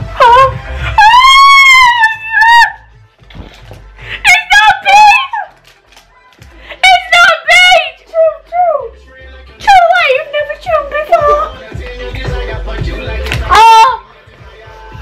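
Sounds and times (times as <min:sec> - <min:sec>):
women screaming: 0:00.2 - 0:02.8.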